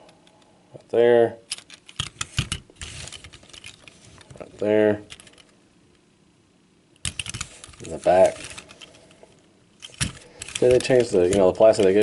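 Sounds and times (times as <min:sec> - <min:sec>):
faint handling rustle: 0:00.0 - 0:05.6, 0:07.2 - 0:12.0
plastic toys clicking and knocking: 0:01.5 - 0:04.0, 0:07.0 - 0:09.0, 0:09.8 - 0:12.0.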